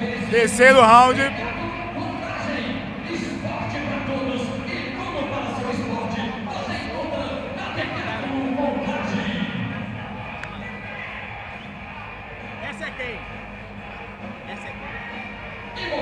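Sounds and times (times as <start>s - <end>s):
indistinct voices: 0.3s - 1.3s
music playing: 0.3s - 1.3s.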